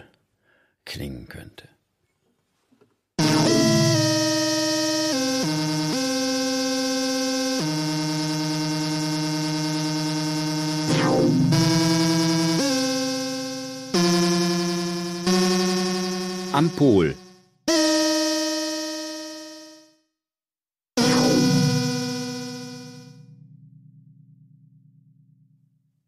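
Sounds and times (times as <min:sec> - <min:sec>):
synthesizer sliding sweep: 0:03.2 - 0:06.0, 0:10.8 - 0:15.2, 0:21.0 - 0:23.4
slow synthesizer music: 0:03.2 - 0:19.8, 0:21.0 - 0:25.7.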